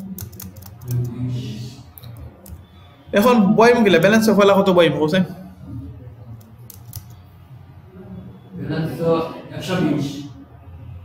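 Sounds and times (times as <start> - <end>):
light computer clicks: 6.3 - 7.2.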